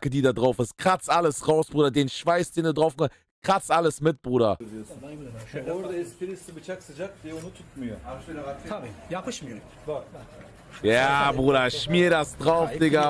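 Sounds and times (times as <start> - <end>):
man talking: 0.0 - 13.0.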